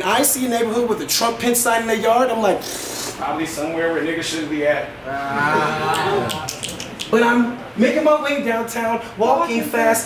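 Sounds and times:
audience ooh: 5.1 - 7.1.

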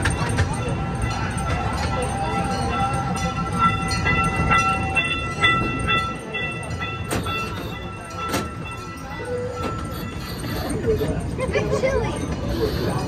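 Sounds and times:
high ringing tone: 0.0 - 13.0
regular track clicks: 0.0 - 13.0
train rumbling on track: 0.0 - 13.0.

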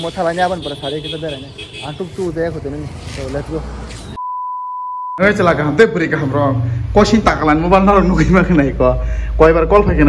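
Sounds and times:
bleep tone: 4.2 - 5.3.

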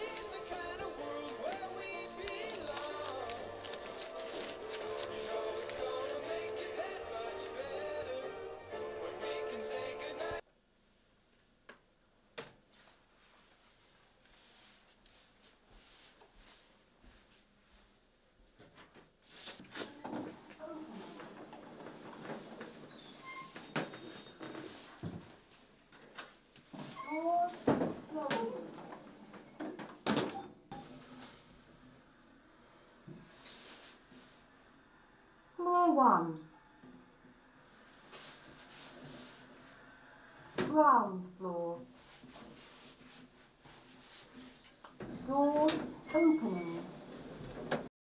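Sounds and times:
lift doors sliding: 20.9 - 24.7.

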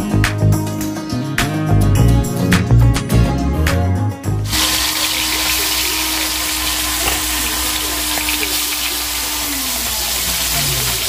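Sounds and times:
fish frying in hot oil: 4.5 - 11.0.

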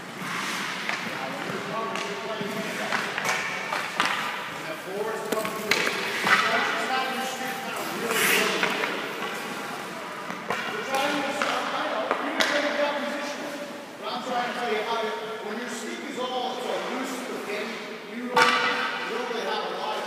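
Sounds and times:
voices echoing in ice rink: 0.0 - 20.0
sticks and pucks knocking on ice: 0.8 - 4.5, 5.2 - 6.9, 10.2 - 12.8, 18.4 - 18.9
hissing scrape on ice: 7.8 - 9.7.

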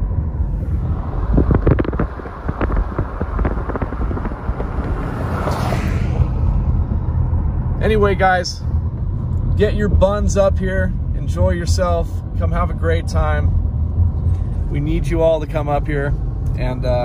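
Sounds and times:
car road noise rumble: 0.0 - 17.0.

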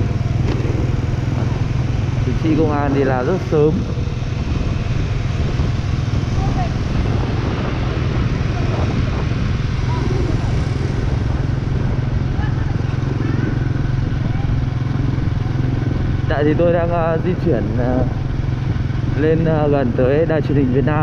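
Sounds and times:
motorbike engine running: 0.0 - 21.0
road noise: 0.0 - 21.0
wind rush on microphone: 0.0 - 21.0.

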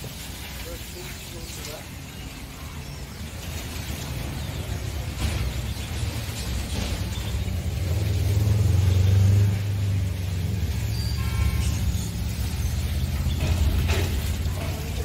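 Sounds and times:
machinery rumbling: 2.4 - 15.0.

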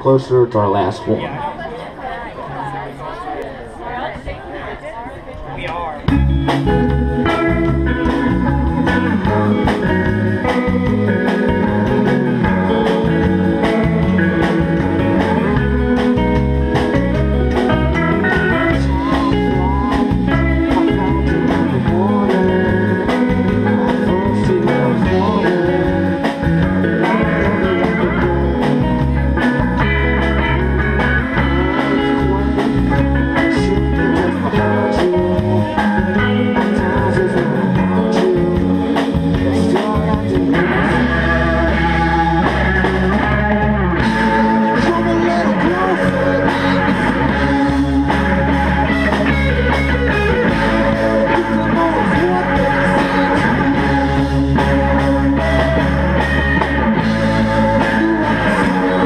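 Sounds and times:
live rock band playing: 5.4 - 59.0.

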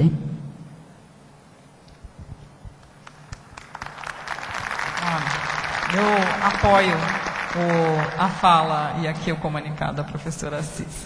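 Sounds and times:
people clapping: 2.8 - 8.8.

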